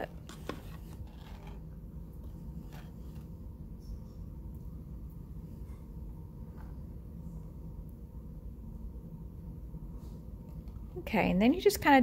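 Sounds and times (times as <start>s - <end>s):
soft clay scrape: 0.0s - 4.1s
low room hum: 0.0s - 12.0s.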